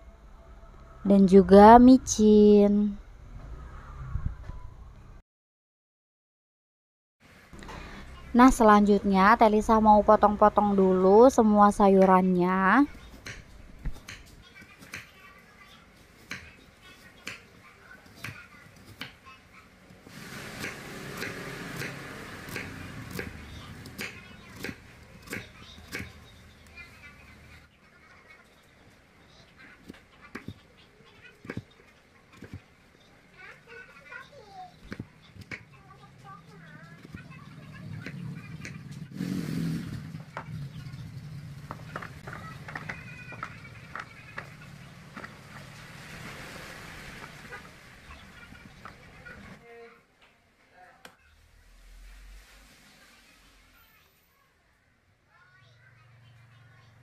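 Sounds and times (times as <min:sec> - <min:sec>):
low hum: 0:00.0 - 0:05.2.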